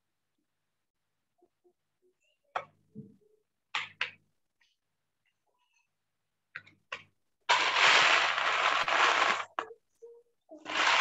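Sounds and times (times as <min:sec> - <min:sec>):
crackling rustling noise: 0:07.5 - 0:09.6, 0:10.6 - 0:11.0.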